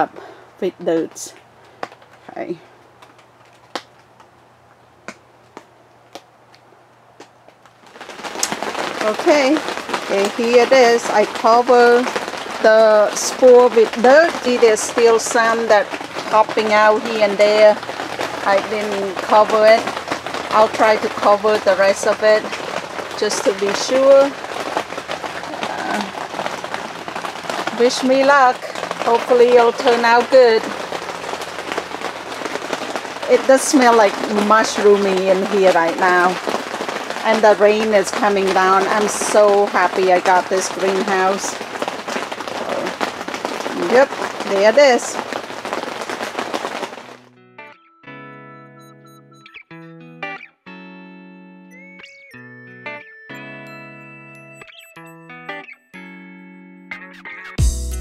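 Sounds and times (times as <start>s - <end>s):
rain pattering on plastic: 0.0s - 47.3s
raindrops ticking on plastic: 0.0s - 47.3s.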